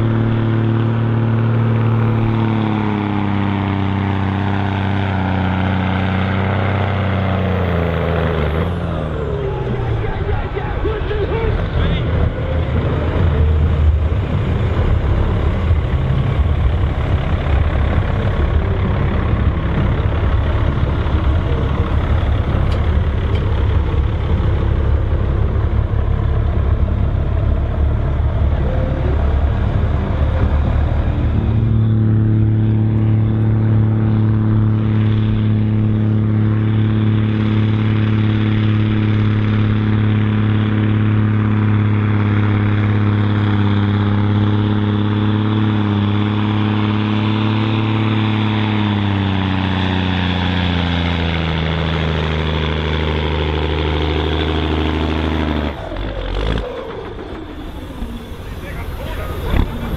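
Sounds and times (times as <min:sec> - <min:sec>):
diesel truck engine running hard: 0:00.0 - 0:59.9.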